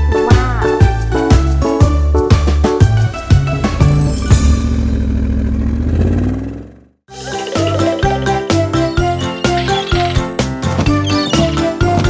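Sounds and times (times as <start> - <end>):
vehicle engine running: 2.8 - 7.0.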